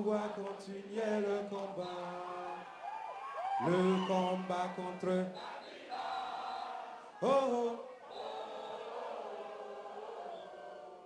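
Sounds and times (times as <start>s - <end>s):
audience singing together: 0.0s - 2.7s, 3.8s - 11.0s.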